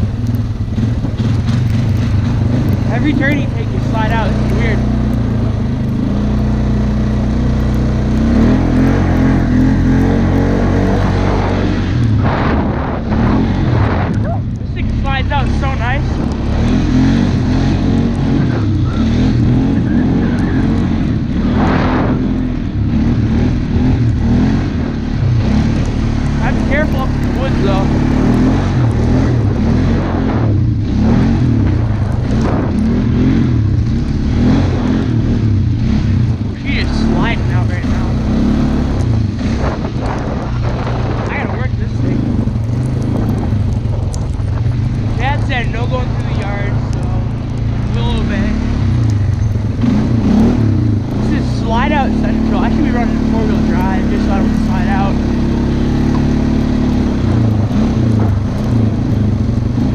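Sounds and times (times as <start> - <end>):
quad bike engine revving: 0.0 - 59.9.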